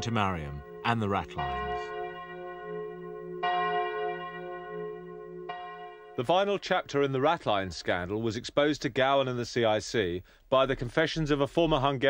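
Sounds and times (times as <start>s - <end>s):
church bell tolling: 0.0s - 6.7s.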